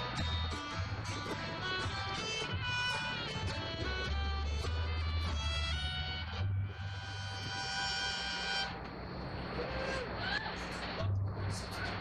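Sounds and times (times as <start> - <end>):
upright bass: 0.0 - 8.6
fiddle playing: 0.0 - 8.8
acoustic guitar: 0.0 - 8.9.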